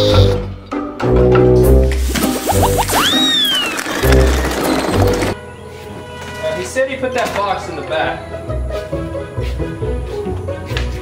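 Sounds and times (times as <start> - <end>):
background music: 0.0 - 11.0
high whistle-like falling tone: 2.4 - 3.9.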